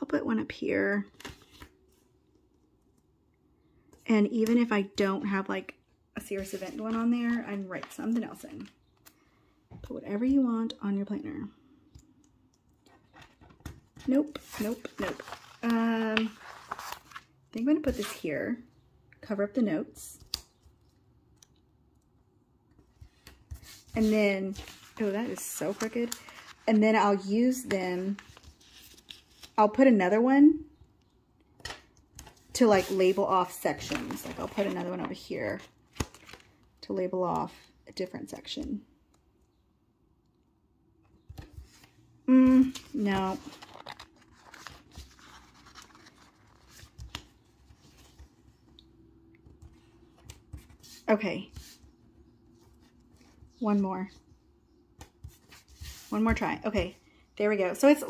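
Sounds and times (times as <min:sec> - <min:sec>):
paper rustling: 0:12.9 - 0:18.2, 0:23.0 - 0:26.9, 0:27.6 - 0:29.6, 0:31.6 - 0:36.6, 0:41.4 - 0:48.4.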